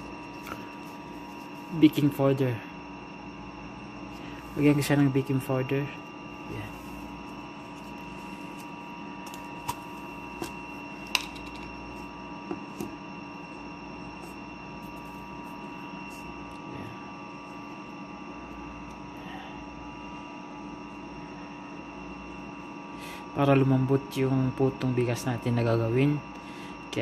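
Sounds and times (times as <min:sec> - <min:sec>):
appliance humming: 0:00.0 - 0:27.0.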